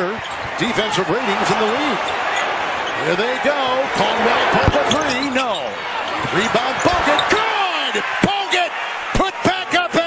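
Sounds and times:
crowd noise: 0.0s - 10.0s
shoe squeaks: 0.2s - 0.5s, 4.5s - 7.4s.

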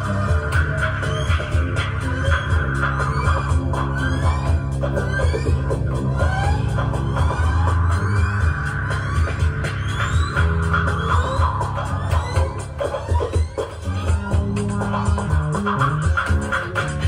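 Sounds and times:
pulsing low bass drone: 0.0s - 17.0s.

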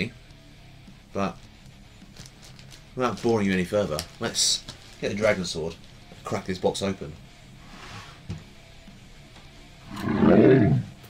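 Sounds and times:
faint guitar music: 0.0s - 11.0s.

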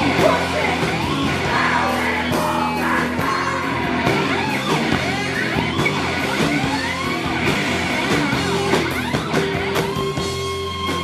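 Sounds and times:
man singing: 0.0s - 0.8s, 1.4s - 4.0s
bass guitar: 0.0s - 11.0s
drums: 0.0s - 11.0s
electric guitar: 0.0s - 11.0s.

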